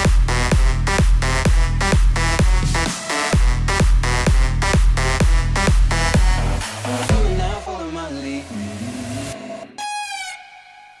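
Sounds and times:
house music beat: 0.0s - 11.0s.

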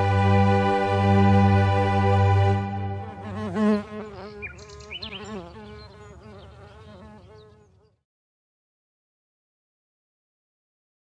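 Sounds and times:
held music chord: 0.0s - 4.1s
buzzing bee sound effect: 0.2s - 8.0s.

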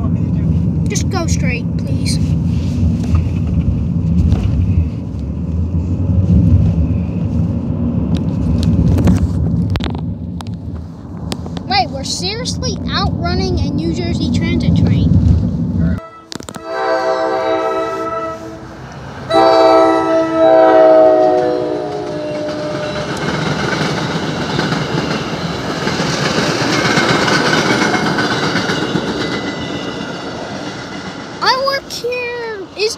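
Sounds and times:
train wheels on rails: 0.0s - 16.8s, 17.4s - 32.9s
train horn blasts: 15.8s - 23.2s.

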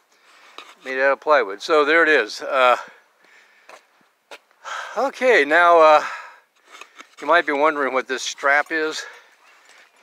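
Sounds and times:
man speaking: 0.8s - 3.0s, 5.0s - 6.1s, 7.2s - 9.2s
intake of breath: 2.9s - 4.0s
faint handling noise: 6.5s - 10.0s.

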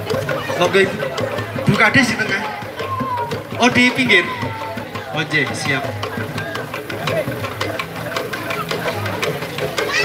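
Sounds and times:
music with clicking beat: 0.0s - 10.0s
voices talking: 0.0s - 10.0s.

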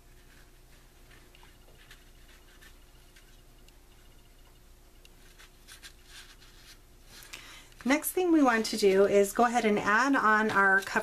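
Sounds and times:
card rustling and scratchy taps: 5.1s - 11.0s.

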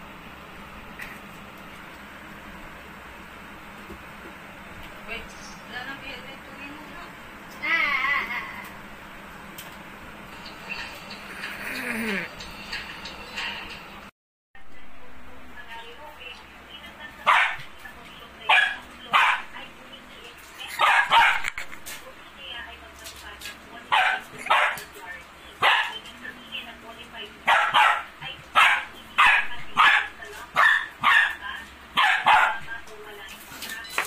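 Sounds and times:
dog play barking: 17.2s - 17.7s, 18.5s - 19.6s, 20.7s - 21.7s, 23.9s - 25.0s, 25.6s - 26.0s, 27.4s - 32.7s.

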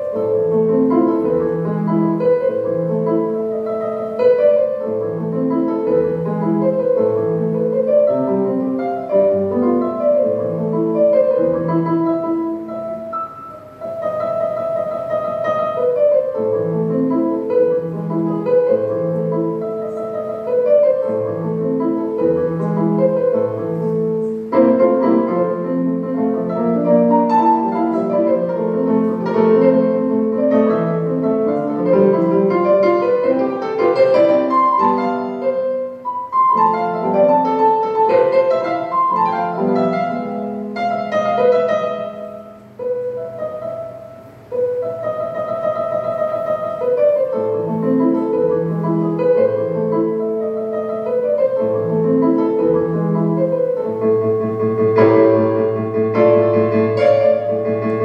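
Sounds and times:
keyboard piano melody with chords: 0.0s - 58.0s.

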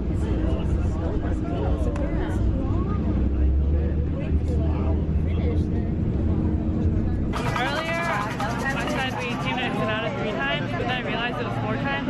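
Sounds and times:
close-by voices: 0.0s - 12.0s
faint crowd voices: 0.0s - 12.0s
street low rumble: 0.0s - 12.0s.

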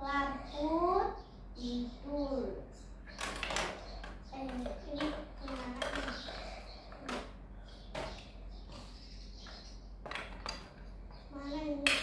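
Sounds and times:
plastic toy clicks and knocks: 3.2s - 6.4s.

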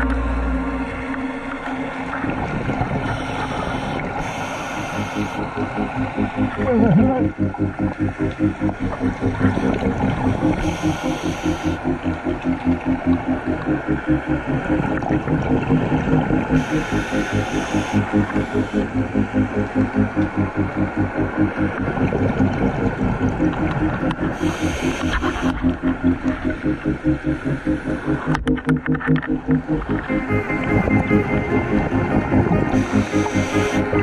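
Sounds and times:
throbbing underwater engine hum: 0.0s - 34.0s.

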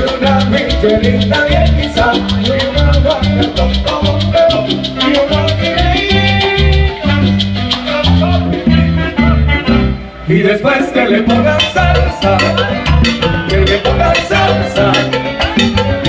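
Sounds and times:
congas: 0.0s - 16.0s
high percussion ticking: 0.0s - 16.0s
rhythmic bass line: 0.0s - 16.0s
salsa band playing: 0.0s - 16.0s
saxophone: 3.0s - 10.6s, 11.2s - 16.0s.

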